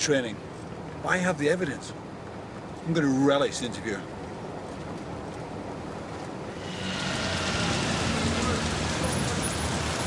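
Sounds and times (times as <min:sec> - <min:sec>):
traffic on wet road: 0:02.3 - 0:10.0
rain hissing: 0:06.6 - 0:10.0.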